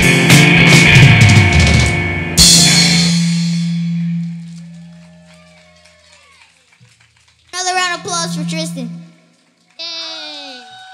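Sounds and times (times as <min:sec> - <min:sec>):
rock band final chord: 0:00.0 - 0:04.8.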